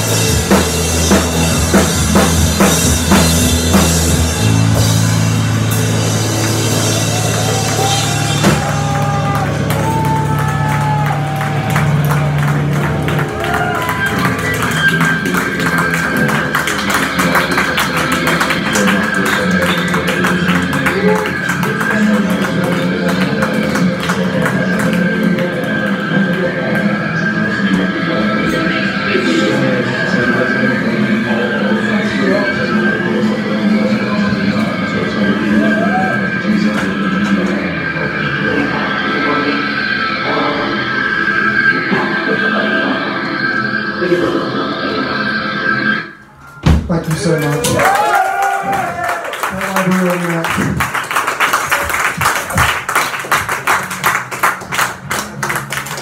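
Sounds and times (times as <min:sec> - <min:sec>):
live band playing loudly: 0:00.0 - 0:25.5
drums: 0:00.0 - 0:31.3, 0:46.3 - 0:56.0
electric guitars strummed: 0:00.0 - 0:46.0.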